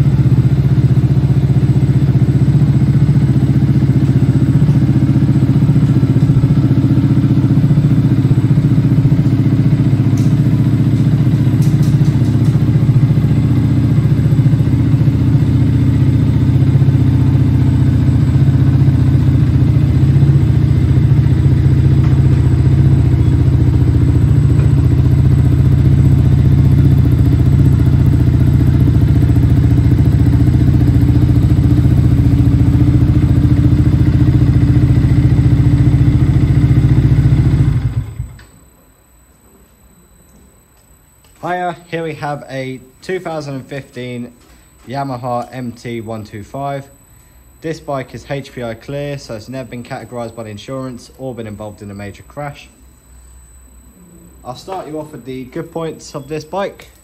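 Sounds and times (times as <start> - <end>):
motorcycle engine idling: 0.0 - 38.4.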